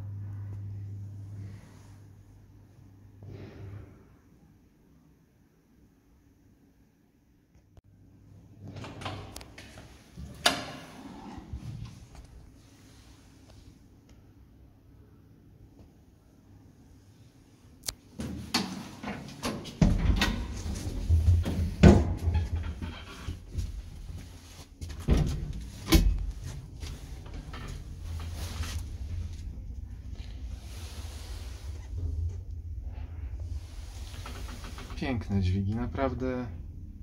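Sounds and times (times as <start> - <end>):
low lift hum: 0.0 - 7.3, 19.8 - 37.0.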